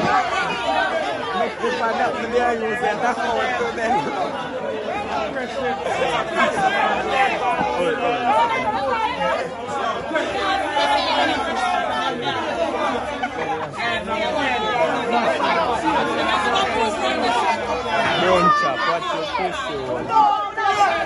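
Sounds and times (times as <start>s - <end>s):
people talking over one another: 0.0s - 21.0s.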